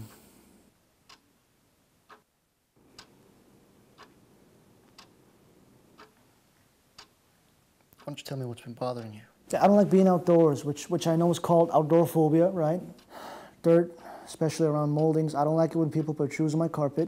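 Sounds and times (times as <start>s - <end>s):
clock ticking faintly: 1.0s - 17.0s.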